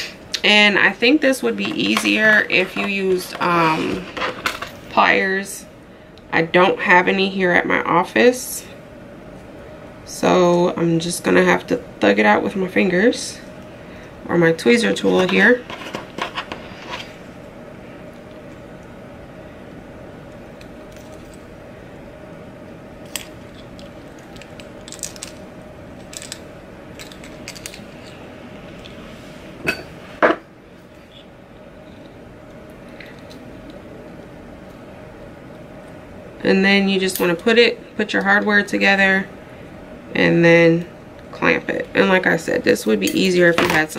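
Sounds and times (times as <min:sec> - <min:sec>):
low room hum: 0:00.0 - 0:43.9.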